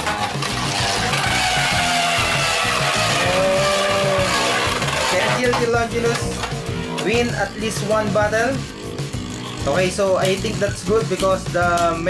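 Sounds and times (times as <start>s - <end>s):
spinning tops whirring and scraping: 0.0s - 12.0s.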